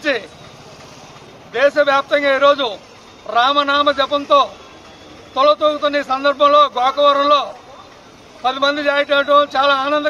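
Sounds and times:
man speaking: 0:05.4 - 0:07.7, 0:08.4 - 0:10.0.

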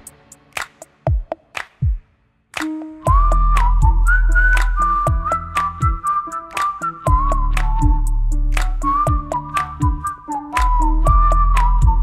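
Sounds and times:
ticking percussion: 0:02.6 - 0:12.0
whistle-like lead melody: 0:02.6 - 0:12.0
deep held bass: 0:03.1 - 0:06.0, 0:07.1 - 0:12.0.

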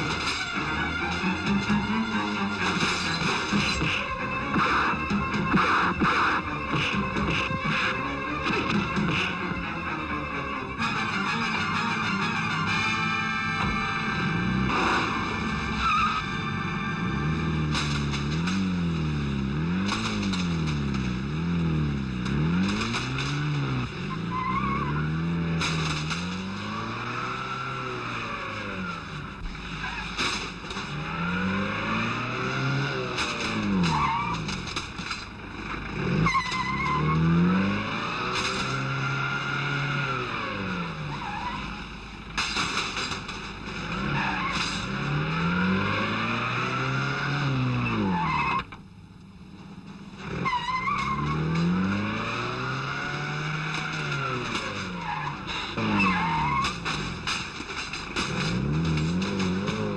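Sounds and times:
engines revving up and down: 0:00.0 - 0:48.8, 0:49.8 - 0:59.9
tyres skidding: 0:00.0 - 0:59.9.

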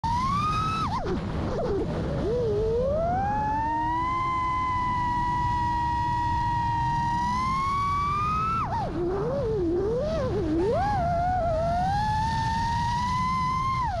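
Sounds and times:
propeller wind rush: 0:00.0 - 0:13.2
quadcopter motors whining: 0:00.0 - 0:14.0.

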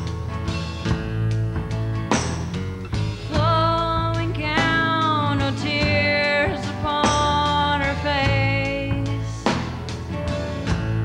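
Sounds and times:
bass and drums: 0:00.0 - 0:11.0
strummed acoustic guitar: 0:00.0 - 0:11.0
woman singing: 0:03.3 - 0:09.6.

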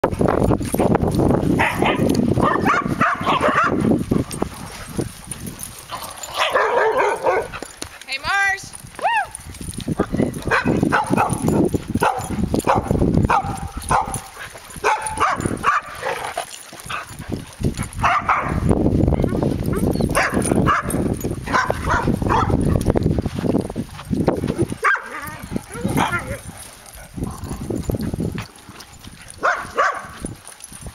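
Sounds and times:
dogs barking and yipping: 0:00.0 - 0:08.1, 0:08.9 - 0:30.9.

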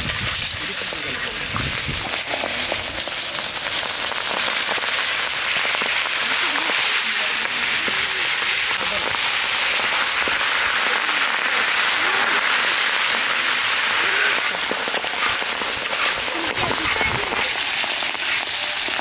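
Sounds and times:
oil sizzling and popping: 0:00.0 - 0:19.0.

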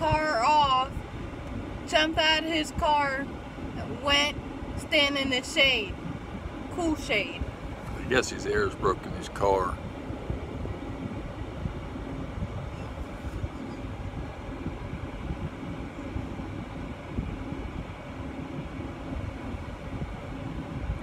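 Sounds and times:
faint hum: 0:00.0 - 0:21.0
low rumble: 0:00.0 - 0:21.0.

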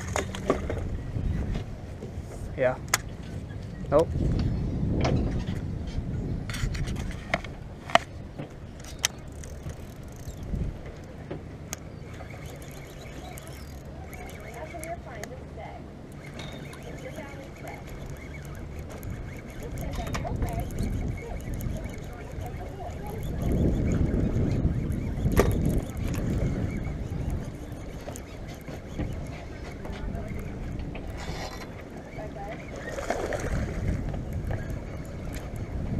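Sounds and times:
wind on microphone: 0:00.0 - 0:11.2, 0:16.2 - 0:35.9
motorboat engine rumbling: 0:00.0 - 0:35.9
sharp clicks: 0:08.8 - 0:15.4, 0:16.1 - 0:31.8.

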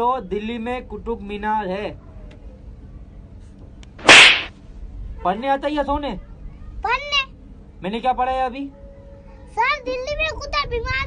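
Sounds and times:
slap across the cheek: 0:04.0 - 0:04.5.

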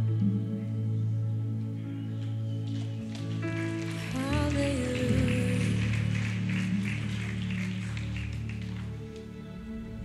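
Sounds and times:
worship band music: 0:00.0 - 0:09.8.

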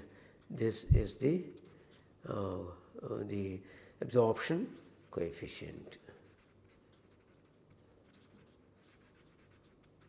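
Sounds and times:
marker pen scratching on paper: 0:00.0 - 0:02.2, 0:04.6 - 0:10.0.

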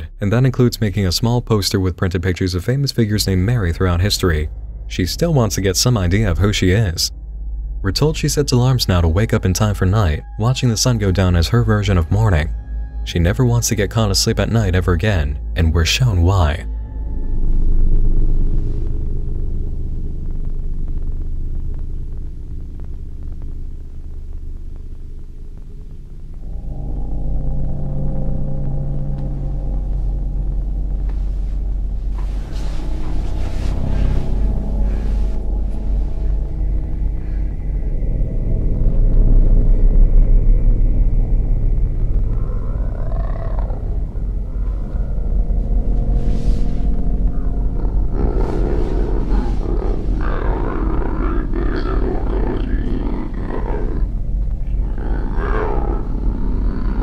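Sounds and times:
low rumbling horror drone: 0:00.0 - 0:57.0
harsh distorted roar: 0:32.1 - 0:57.0.

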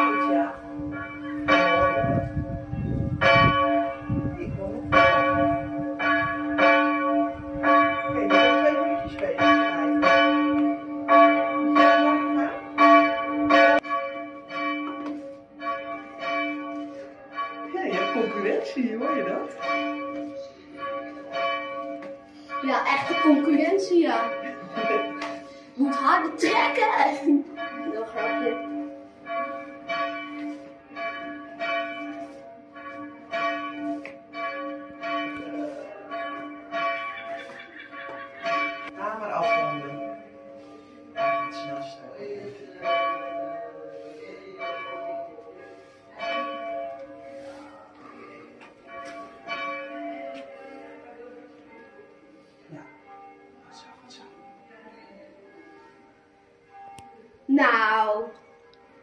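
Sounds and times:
church bells ringing: 0:00.0 - 0:59.0.

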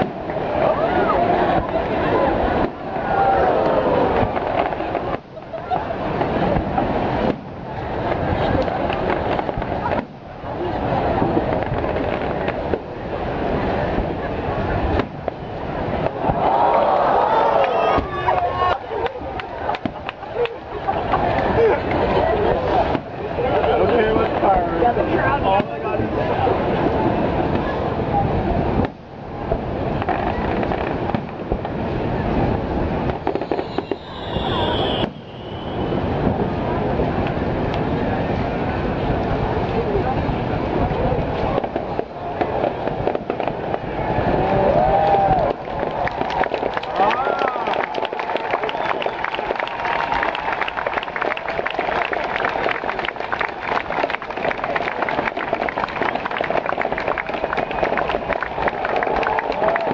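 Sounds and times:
fireworks crackling and banging: 0:00.0 - 0:59.9
fireworks shells bursting: 0:33.0 - 0:36.4.

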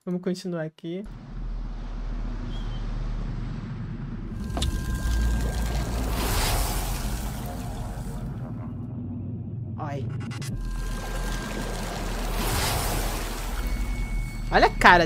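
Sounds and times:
deep steady rumble: 0:01.1 - 0:15.0
rush of water: 0:04.4 - 0:08.5, 0:10.6 - 0:15.0
sharp hit: 0:10.0 - 0:15.0.

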